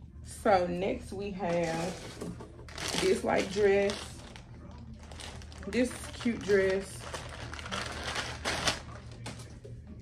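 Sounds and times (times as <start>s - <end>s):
plastic bag crinkling: 1.5s - 9.4s.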